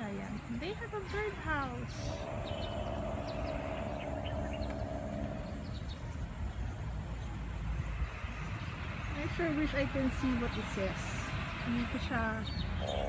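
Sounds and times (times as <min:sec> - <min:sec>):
sustained hum: 0:00.0 - 0:10.9
low traffic rumble: 0:00.0 - 0:13.0
faint bird chirps: 0:01.7 - 0:07.3.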